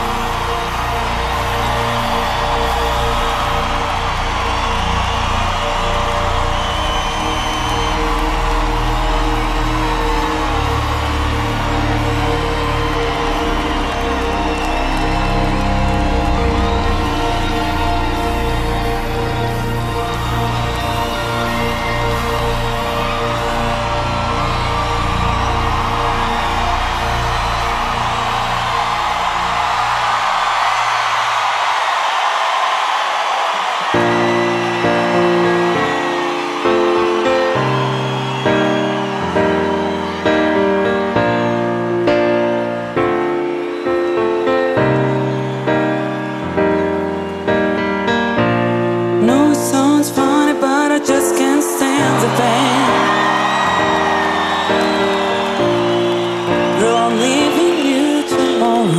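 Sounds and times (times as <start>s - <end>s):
slow piano chords: 0.0s - 33.0s, 33.7s - 58.9s
crowd cheering: 0.0s - 58.9s.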